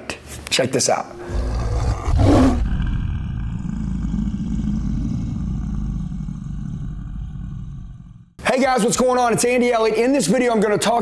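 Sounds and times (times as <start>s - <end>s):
lion roar sound effect: 1.1s - 8.4s.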